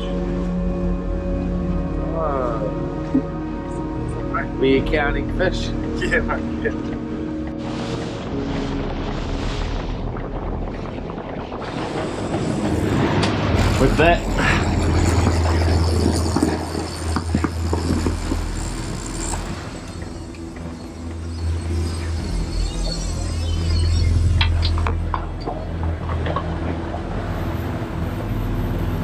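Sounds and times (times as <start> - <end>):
background music: 0.0 - 29.0
outboard motors running: 0.0 - 29.0
wind: 0.0 - 29.0
water rushing: 1.2 - 29.0.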